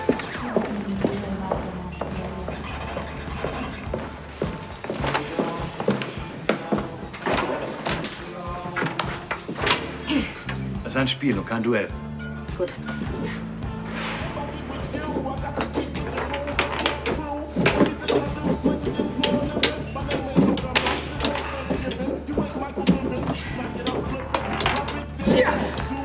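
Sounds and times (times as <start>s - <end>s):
background music with low beat: 0.0s - 26.0s
foosball clacks and knocks: 15.6s - 25.3s.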